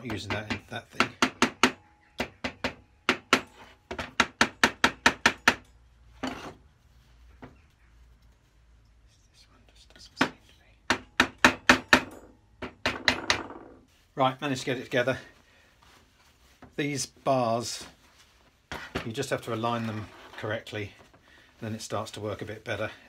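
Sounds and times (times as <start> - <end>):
wood block knocking on metal plane: 10.2 - 13.8.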